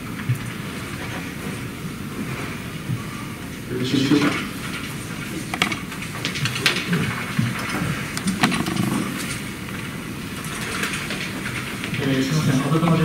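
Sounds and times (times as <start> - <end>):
light clicks and knocks: 5.5 - 9.4.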